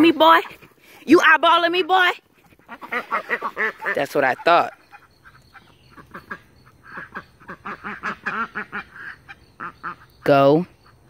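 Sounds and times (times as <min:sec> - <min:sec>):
ducks quacking: 0:02.0 - 0:11.0.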